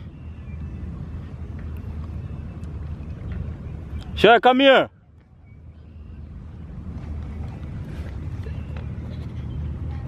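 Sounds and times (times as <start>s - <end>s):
low outdoor rumble by water: 0.0s - 4.3s.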